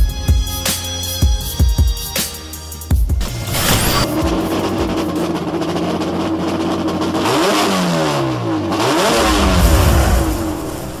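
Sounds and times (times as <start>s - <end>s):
car engine revving: 3.2s - 11.0s.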